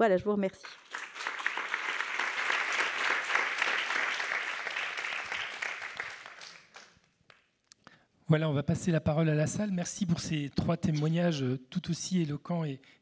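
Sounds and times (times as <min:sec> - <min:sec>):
audience applause: 0:00.6 - 0:07.0.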